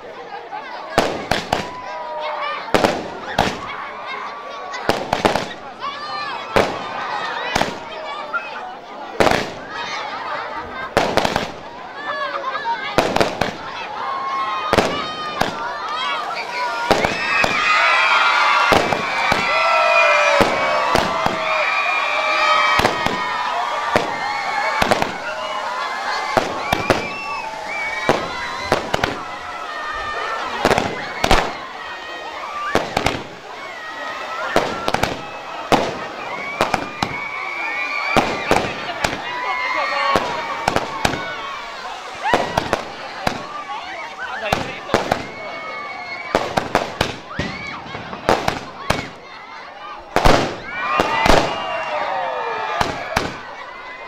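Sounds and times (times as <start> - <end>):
fireworks bangs and crackles: 0.8 - 4.1, 4.7 - 8.4, 9.1 - 54.0.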